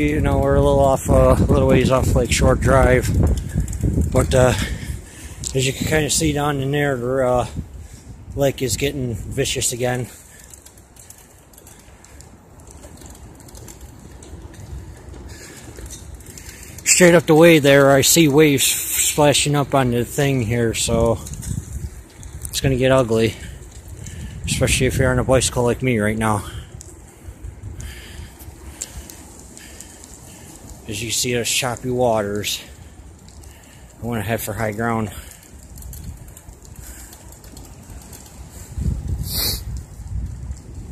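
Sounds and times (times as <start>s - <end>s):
bicycle tyres on pavement: 0.0s - 40.9s
wind buffeting microphone: 0.0s - 40.9s
faint clicks: 10.0s - 16.9s, 26.7s - 30.8s, 32.3s - 34.0s, 35.0s - 40.6s.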